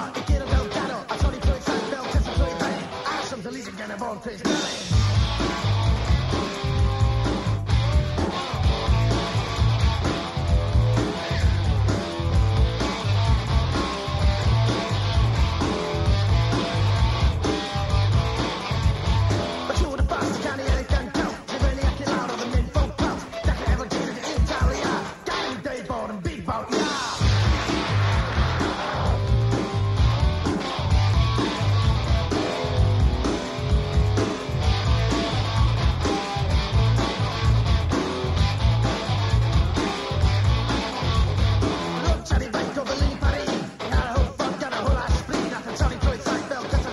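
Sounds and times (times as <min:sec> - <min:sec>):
strummed guitar: 0:00.0 - 0:03.8, 0:04.5 - 0:25.8, 0:27.2 - 0:46.9
drums: 0:00.0 - 0:46.9
bass line: 0:04.6 - 0:25.0, 0:26.9 - 0:46.9
drum hits: 0:27.2 - 0:34.9.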